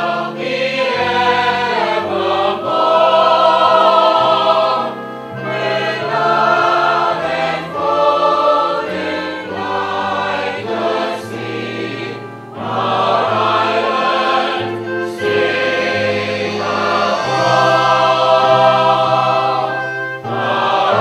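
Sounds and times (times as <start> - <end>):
cast singing choral anthem: 0.0 - 21.0.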